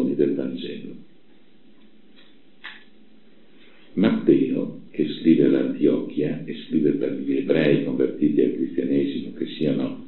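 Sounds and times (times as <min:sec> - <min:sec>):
low background hiss and hum: 0:00.0 - 0:10.0.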